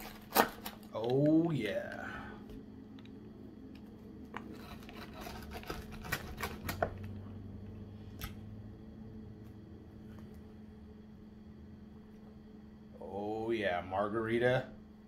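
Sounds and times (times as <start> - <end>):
pizza cutter crunching crust: 0.0 - 1.7, 4.3 - 7.2
faint steady hum: 0.0 - 15.0.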